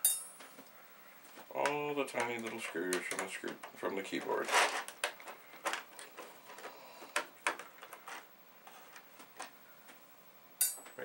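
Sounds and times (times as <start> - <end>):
bright clink: 0.0 - 0.4, 10.6 - 11.0
small clicks and taps: 1.3 - 4.0.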